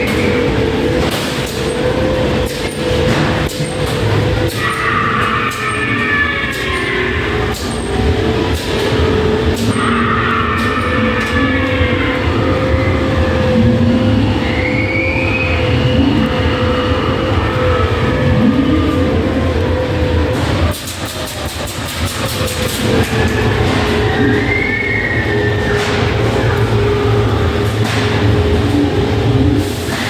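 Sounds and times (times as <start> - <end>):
continuous hum: 0.0 - 30.0
ride car rumbling on track: 0.0 - 30.0.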